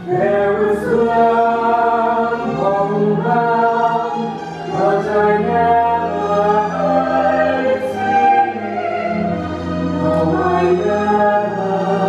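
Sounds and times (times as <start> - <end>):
man and woman singing a duet: 0.0 - 12.0.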